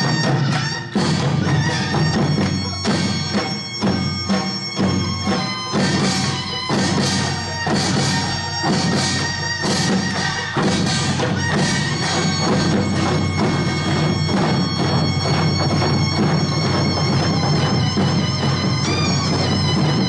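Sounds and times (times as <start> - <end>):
reedy wind melody: 0.0 - 20.0.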